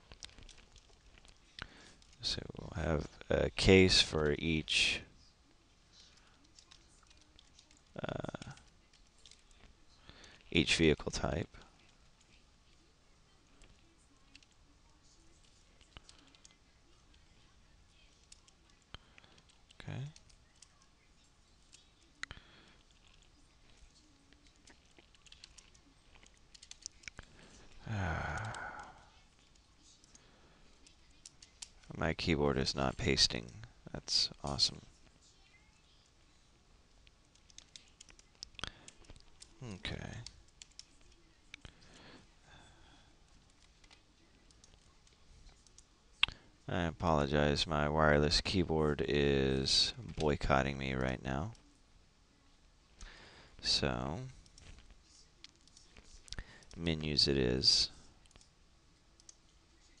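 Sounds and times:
keyboard and mouse clicks: 0:24.4 - 0:27.2, 0:40.2 - 0:41.7, 0:59.2 - 0:59.6
keyboard keys clicking: 0:25.0 - 0:27.1
faint computer mouse clicks: 0:58.2 - 0:58.5.

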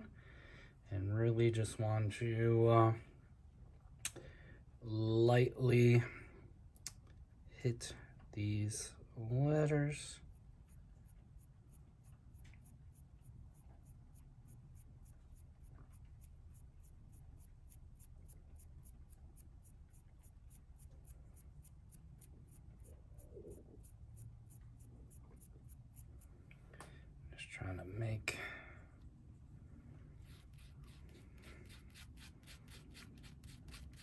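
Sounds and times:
low room hum: 0:00.0 - 0:34.0
paintbrush scratchy rubbing: 0:10.2 - 0:26.3, 0:30.2 - 0:34.0.

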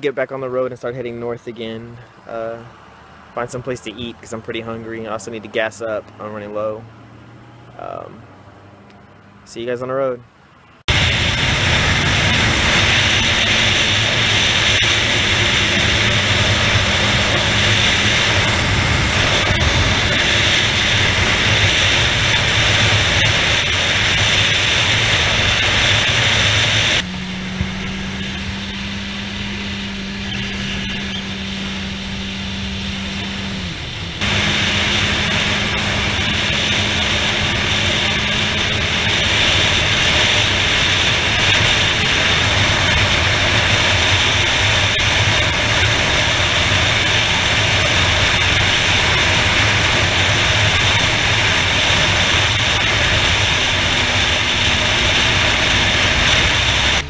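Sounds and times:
motorcycle engine hum: 0:01.2 - 0:57.0
wind rushing on microphone: 0:10.9 - 0:28.8.

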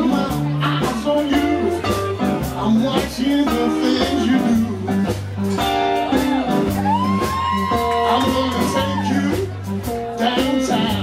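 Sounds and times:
bass line: 0:00.0 - 0:11.0
drums: 0:00.0 - 0:11.0
electric guitar: 0:00.0 - 0:11.0.

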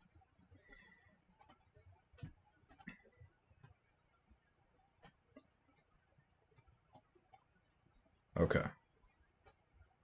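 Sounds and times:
computer mouse clicks: 0:00.0 - 0:03.9, 0:04.9 - 0:07.5, 0:09.4 - 0:09.9.

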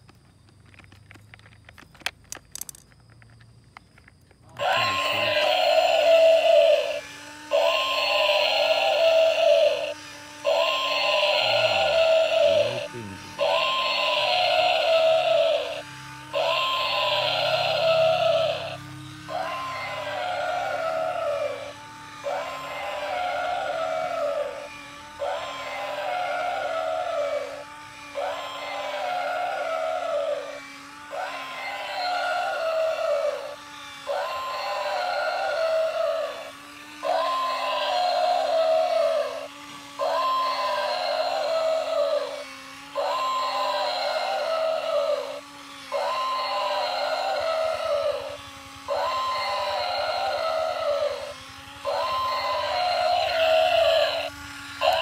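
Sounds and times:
toy walking motor hum: 0:00.0 - 0:55.0
electronic toy animal call: 0:04.5 - 0:55.0.

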